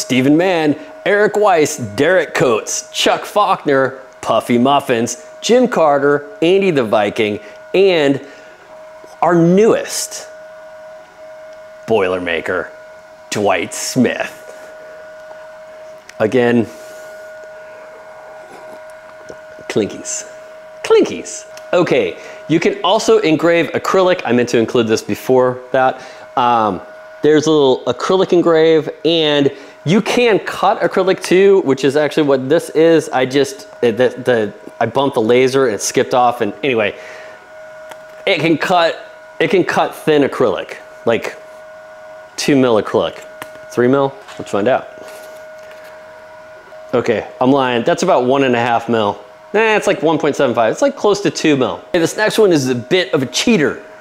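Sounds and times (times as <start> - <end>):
high-pitched machine hum: 0.0 - 54.0
high-pitched whine: 0.0 - 54.0.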